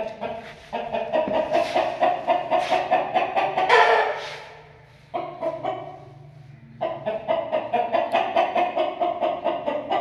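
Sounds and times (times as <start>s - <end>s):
chicken clucking fast: 0.0s - 10.0s.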